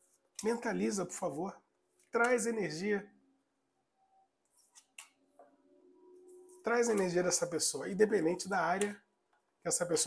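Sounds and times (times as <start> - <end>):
faint card rustles: 4.4 - 5.4.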